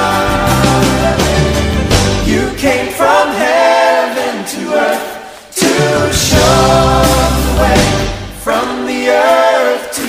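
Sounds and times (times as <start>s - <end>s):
bass and drums: 0.0s - 3.0s, 5.6s - 8.8s
group of voices singing: 0.0s - 10.0s.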